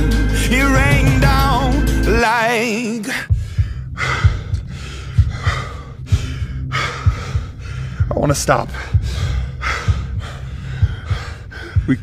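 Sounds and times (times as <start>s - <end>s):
low bass bed: 0.0s - 2.5s, 3.2s - 12.0s
person breathing hard and gasping: 3.0s - 12.0s
dull low thuds: 3.3s - 12.0s.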